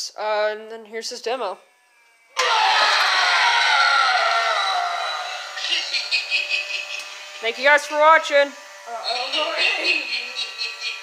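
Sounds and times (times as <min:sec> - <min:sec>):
harsh downward sliding sound effect: 0:02.2 - 0:07.4.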